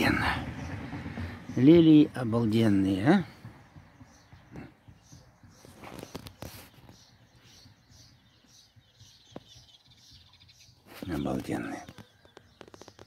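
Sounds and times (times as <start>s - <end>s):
songbird chirping: 0.0s - 13.0s.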